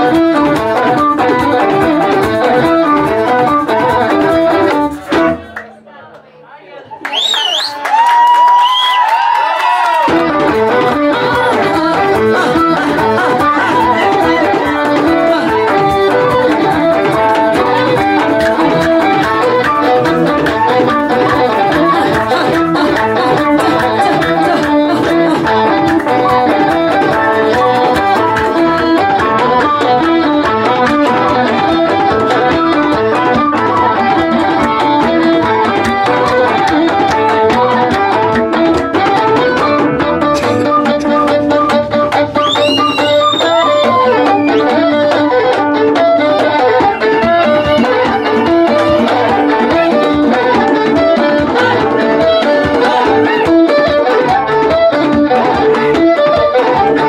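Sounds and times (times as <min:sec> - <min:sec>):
traditional band music: 0:00.0 - 0:05.8, 0:07.9 - 0:57.0
sliding melodic line: 0:10.2 - 0:57.0.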